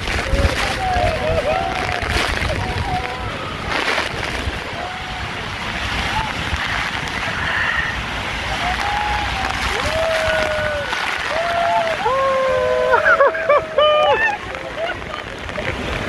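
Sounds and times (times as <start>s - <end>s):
people shouting and whooping: 0.0s - 6.7s, 8.4s - 16.0s
churning whitewater: 0.0s - 16.0s
waterfall roaring: 0.0s - 16.0s
wind buffeting microphone: 0.0s - 16.0s.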